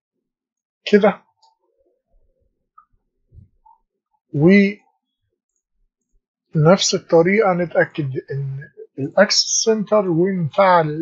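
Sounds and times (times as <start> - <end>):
man saying a word: 0.9 - 1.2, 4.4 - 4.8, 6.6 - 11.0.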